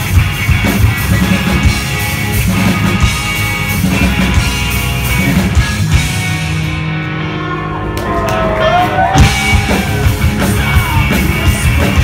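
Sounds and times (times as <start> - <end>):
drums and cymbals: 0.0 - 6.9, 9.0 - 12.0
distorted electric guitars ringing: 0.0 - 12.0
rock band playing live: 0.0 - 12.0.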